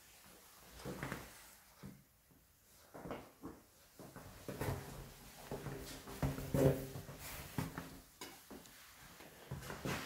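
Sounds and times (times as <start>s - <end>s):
footsteps on tiled floor: 0.6s - 10.0s.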